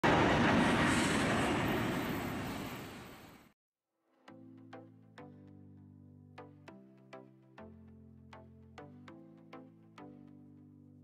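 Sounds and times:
jet engines roaring: 0.0 - 3.4.

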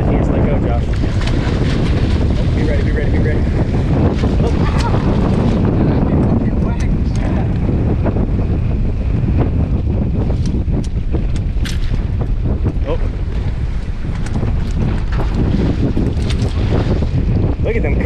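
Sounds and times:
water splashing against boat: 0.0 - 7.8, 10.2 - 18.0
wind buffeting microphone: 0.0 - 18.0.

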